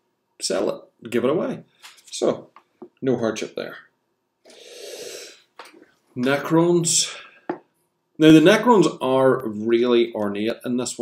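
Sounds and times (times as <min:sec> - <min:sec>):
man exhaling into microphone: 0:04.5 - 0:05.5.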